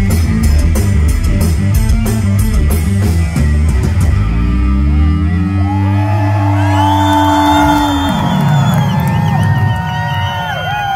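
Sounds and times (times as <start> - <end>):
crowd whooping and cheering: 5.1 - 10.9.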